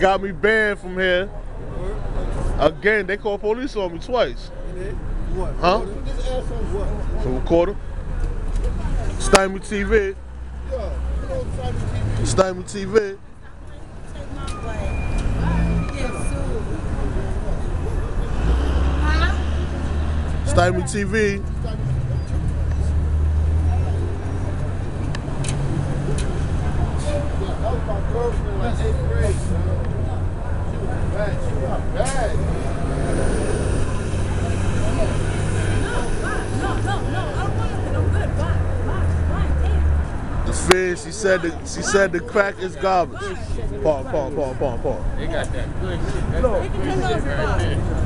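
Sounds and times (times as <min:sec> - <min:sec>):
indistinct voices talking: 0:00.0 - 0:48.0
low traffic rumble: 0:00.0 - 0:48.0.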